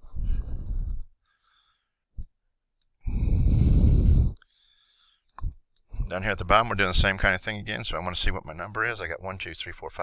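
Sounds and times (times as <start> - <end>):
breath exhaled into microphone: 3.0 - 4.4.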